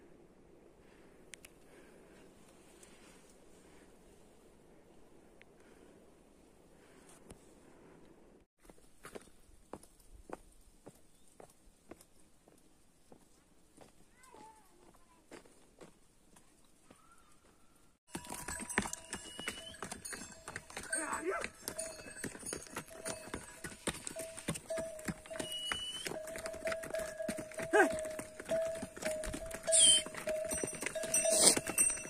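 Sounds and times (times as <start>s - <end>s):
mule hooves clopping on stones: 8.7s - 17.0s, 18.1s - 32.0s
animal bell ringing: 18.1s - 32.0s.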